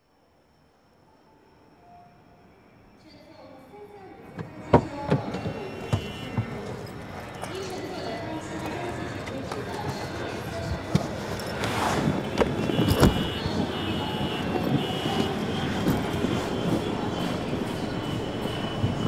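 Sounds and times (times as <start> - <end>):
background rumble: 14.7 - 19.0
high beeping: 14.8 - 19.0.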